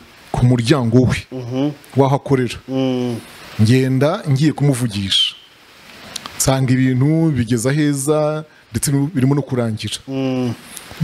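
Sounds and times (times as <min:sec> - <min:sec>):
man speaking into microphone: 0:00.3 - 0:05.4, 0:06.3 - 0:11.0
hissing whistle-like sibilant: 0:05.2 - 0:05.6.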